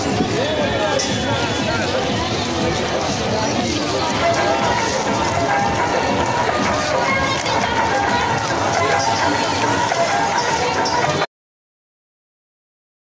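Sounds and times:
crowd chattering: 0:00.0 - 0:11.3
music playing: 0:00.0 - 0:11.3.

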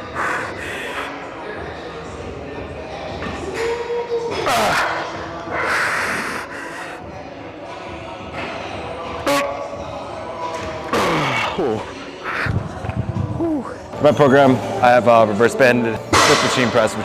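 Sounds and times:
hissing exhale: 0:00.0 - 0:01.1, 0:05.6 - 0:07.0
man straining and breathing hard: 0:00.0 - 0:01.2, 0:05.5 - 0:07.1.

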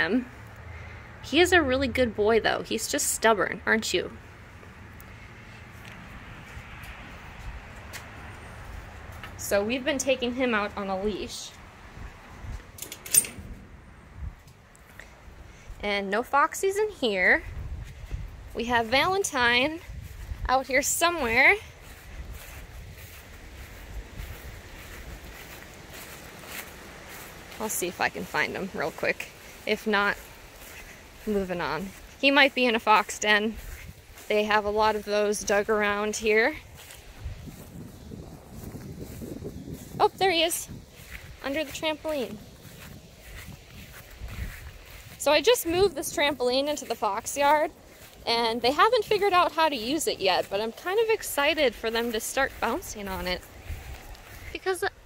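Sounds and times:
wind buffeting microphone: 0:04.7 - 0:55.0
metallic jingling and clinking: 0:12.8 - 0:13.5.

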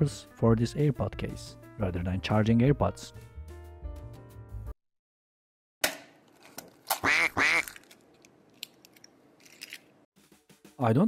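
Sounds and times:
cartoon duck quacks: 0:07.0 - 0:07.6.

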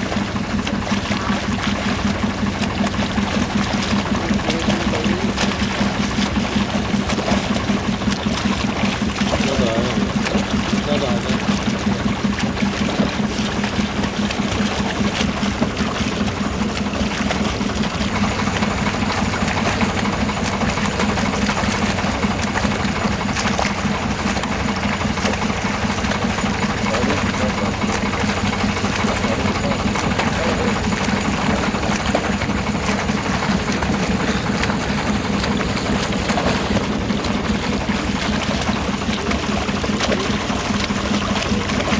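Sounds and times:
low steady hum: 0:00.0 - 0:41.9.

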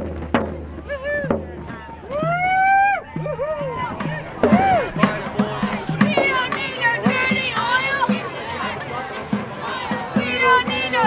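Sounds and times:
drum beat: 0:00.0 - 0:11.0
protesters chanting: 0:00.6 - 0:11.0.

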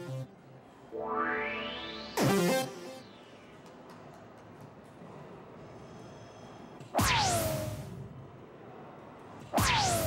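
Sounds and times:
quiet hall background: 0:00.0 - 0:10.0
dartboard electronic whoosh effect: 0:09.6 - 0:10.0.

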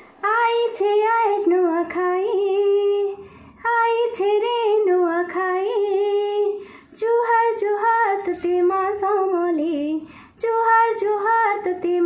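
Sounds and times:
woman singing unaccompanied: 0:00.0 - 0:12.0
singer breathing: 0:03.2 - 0:03.6, 0:06.6 - 0:07.0, 0:10.0 - 0:10.4.

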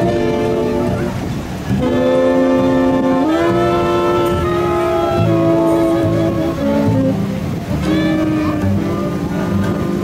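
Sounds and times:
bass: 0:00.0 - 0:10.0
horn section held chord: 0:00.0 - 0:10.0.

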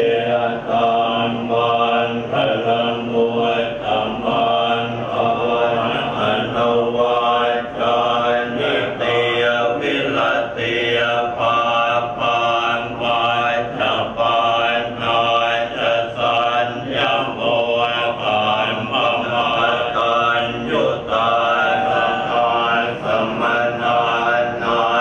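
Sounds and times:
monks chanting in unison: 0:00.0 - 0:25.0.

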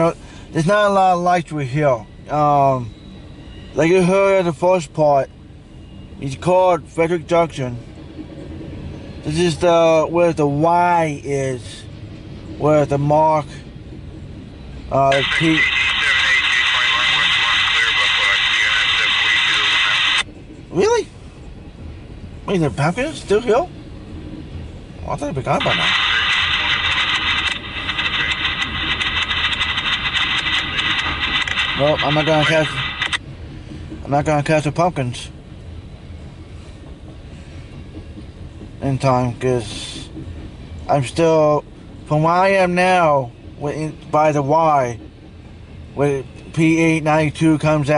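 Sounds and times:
freight train wheels on rails: 0:00.0 - 0:47.9
faint radio voice: 0:15.0 - 0:20.2, 0:25.4 - 0:29.3, 0:30.0 - 0:33.2
radio static burst: 0:15.1 - 0:20.2, 0:25.6 - 0:33.2.

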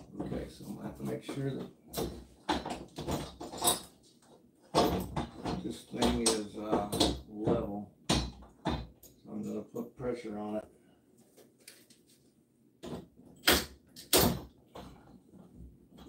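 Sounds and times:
man speaking indistinctly: 0:00.0 - 0:01.8, 0:05.6 - 0:08.0, 0:09.2 - 0:10.7.

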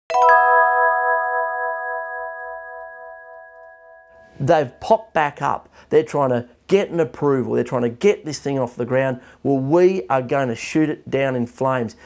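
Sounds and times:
bell-like chime ringing: 0:00.1 - 0:04.8.

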